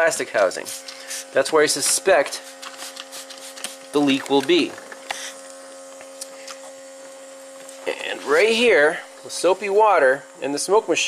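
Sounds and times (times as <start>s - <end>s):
air pump humming: 0.0s - 11.0s.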